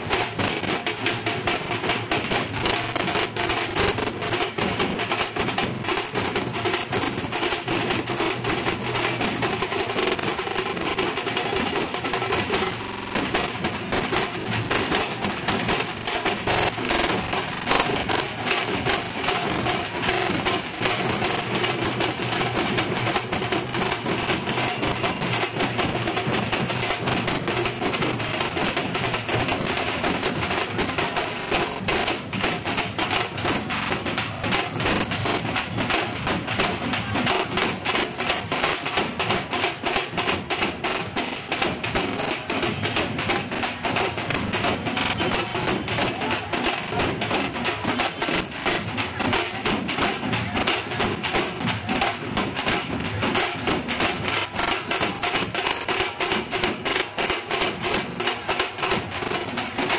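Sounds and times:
continuous noisy din: 0.0s - 59.9s
fast drumming: 0.0s - 59.9s.

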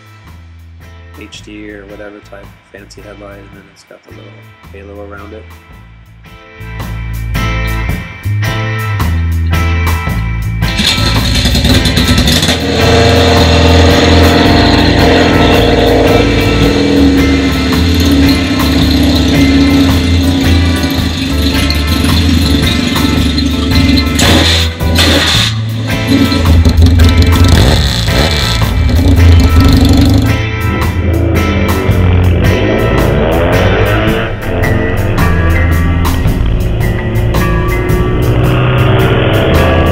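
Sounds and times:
background guitar music: 0.0s - 39.9s
motorcycle kick-started and running: 10.7s - 15.6s, 16.4s - 30.3s.

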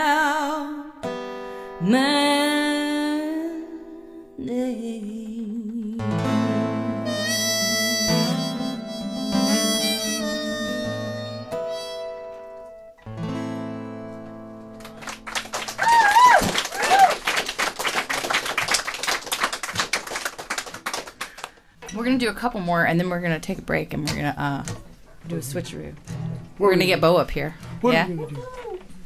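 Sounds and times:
acoustic guitar: 0.0s - 16.7s, 21.0s - 29.0s
harmonica: 6.4s - 12.8s
audience applauding: 14.8s - 21.6s
audience whooping: 15.2s - 19.0s.

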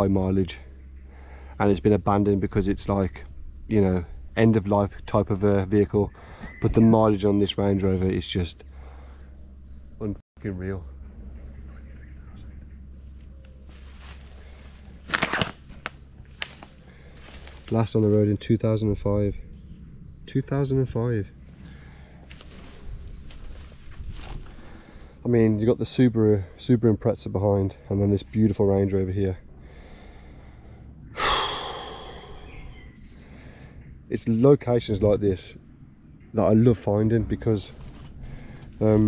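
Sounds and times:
footsteps through dead leaves: 13.1s - 17.9s, 22.2s - 25.0s
twigs snapping: 13.3s - 17.9s, 22.3s - 24.7s
man sighing: 31.2s - 32.6s.

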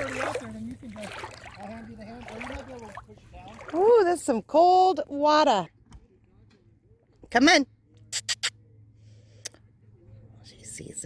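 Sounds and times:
squeaky lip kissing sounds: 8.1s - 8.6s.

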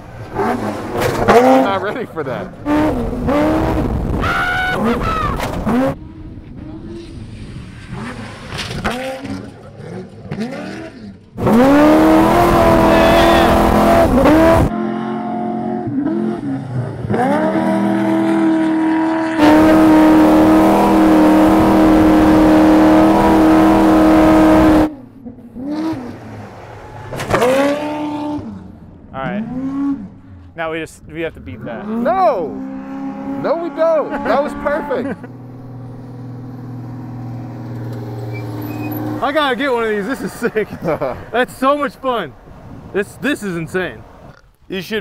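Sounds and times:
truck engine revving: 0.0s - 30.5s, 31.2s - 41.9s.

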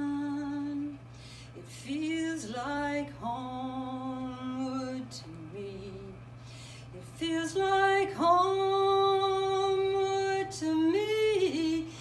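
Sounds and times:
woman singing unaccompanied: 0.0s - 12.0s.

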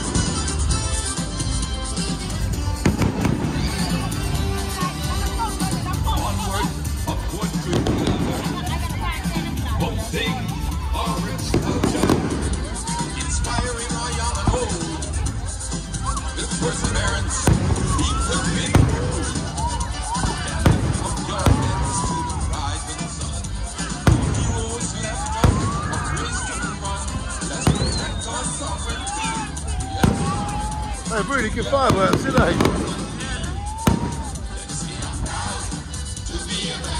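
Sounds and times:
loud amplified music with singing: 0.0s - 36.9s
fireworks bangs: 2.8s - 4.1s, 7.6s - 8.8s, 11.5s - 12.9s, 17.3s - 23.0s, 23.8s - 28.8s, 29.9s - 34.8s
firework high whistle: 27.5s - 29.3s.

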